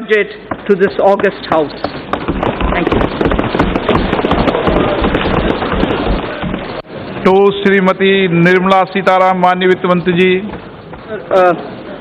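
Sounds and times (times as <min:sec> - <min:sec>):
people thumping desks: 0:00.0 - 0:07.4, 0:09.6 - 0:11.6.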